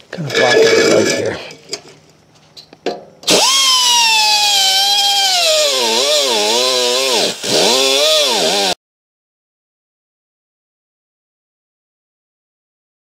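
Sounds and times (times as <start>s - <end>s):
cut-off wheel grinding steel: 3.3s - 8.8s.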